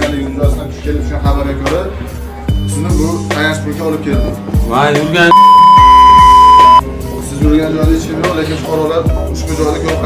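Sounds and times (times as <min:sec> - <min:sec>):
background music with a beat: 0:00.0 - 0:10.0
censor bleep tone: 0:05.3 - 0:06.8.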